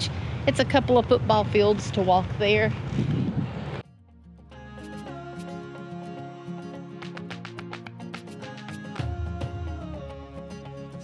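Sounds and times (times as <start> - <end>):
outdoor background noise: 0.0 - 3.8
instrumental music: 3.8 - 11.0.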